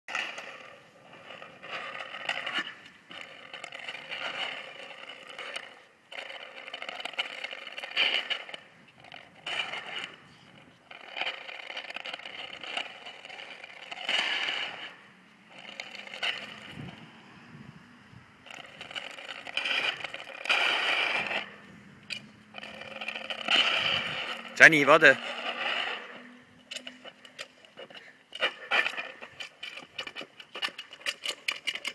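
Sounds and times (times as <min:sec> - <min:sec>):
plastic frisbee scraping on concrete: 0:00.1 - 0:31.9.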